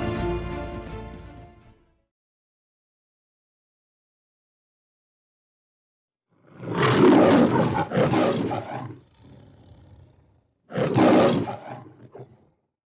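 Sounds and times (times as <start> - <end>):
lion roaring: 6.4 - 12.6.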